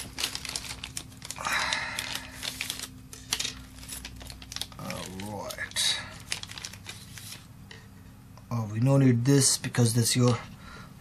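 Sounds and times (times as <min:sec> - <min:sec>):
plastic bag crinkling: 0:00.0 - 0:07.5.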